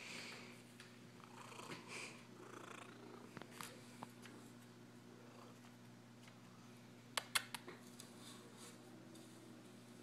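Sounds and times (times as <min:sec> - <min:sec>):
cat purring: 0:01.2 - 0:03.5.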